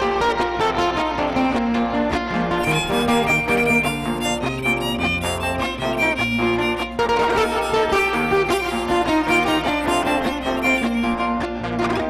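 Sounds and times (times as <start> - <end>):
strummed acoustic guitar: 0.0 - 12.0
violin melody: 0.7 - 12.0.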